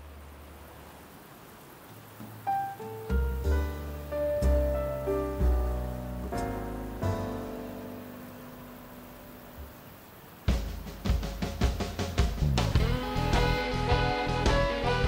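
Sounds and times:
drum beat and bass: 0:10.4 - 0:15.0
held music chord: 0:12.8 - 0:15.0.

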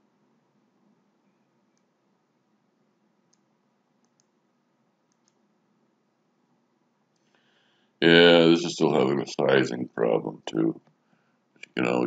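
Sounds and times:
computer mouse clicks: 0:01.7 - 0:02.0, 0:03.3 - 0:04.4, 0:05.0 - 0:05.5.

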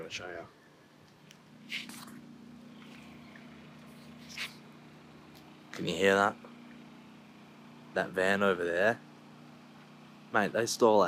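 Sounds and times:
generator humming: 0:00.0 - 0:11.0.

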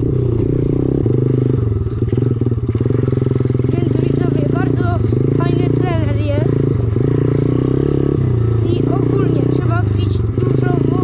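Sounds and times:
dirt bike engine revving: 0:00.0 - 0:11.0
person speaking: 0:03.7 - 0:06.6, 0:08.6 - 0:11.0.

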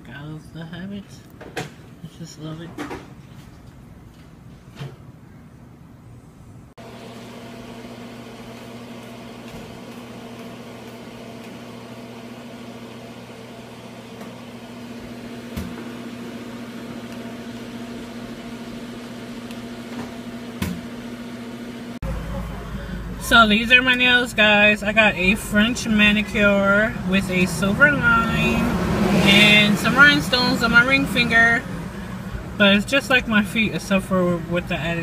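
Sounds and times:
low machine hum: 0:05.1 - 0:35.0.

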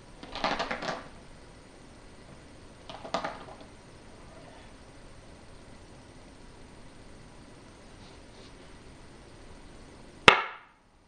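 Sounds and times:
go stone clicking on board: 0:00.2 - 0:01.1.

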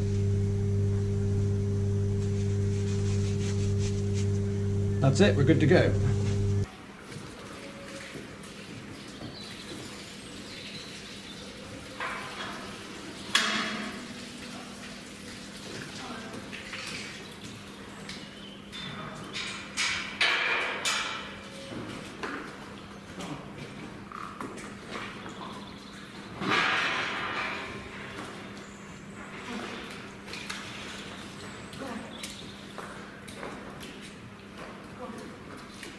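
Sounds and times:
loud steady hum: 0:00.0 - 0:06.7.

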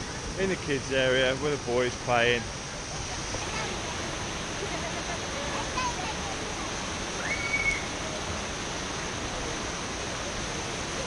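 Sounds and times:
fountain water pouring: 0:00.0 - 0:11.0.

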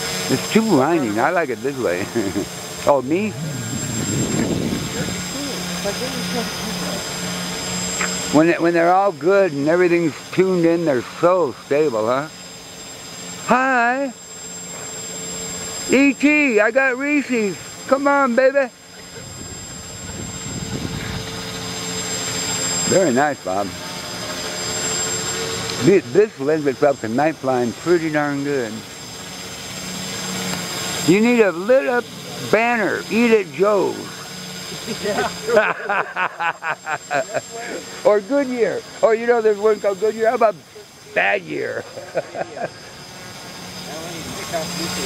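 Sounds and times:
drone motors whirring: 0:00.0 - 0:45.0
high whine: 0:00.0 - 0:45.0.

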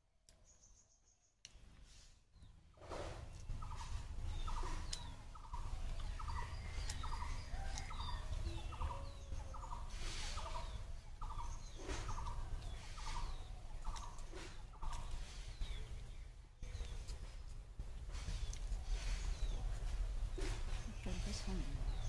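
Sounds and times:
faint bird chirps: 0:03.2 - 0:17.2.

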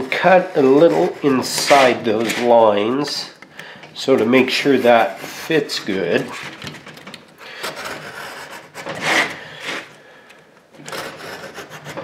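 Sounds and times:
utility knife scoring drywall: 0:00.0 - 0:12.0.

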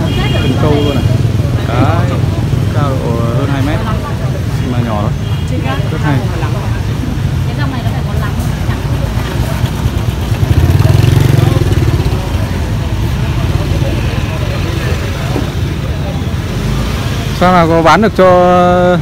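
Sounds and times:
motorbike engine rumble: 0:05.5 - 0:17.8.

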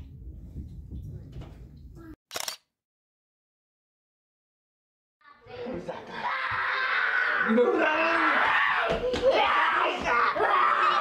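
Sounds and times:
camera shutter clacks: 0:02.3 - 0:02.7.

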